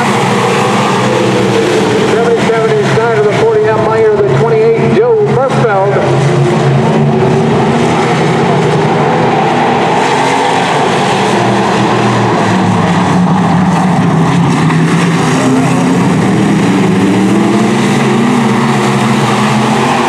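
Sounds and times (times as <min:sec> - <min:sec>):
race car engines roaring: 0:00.0 - 0:20.0.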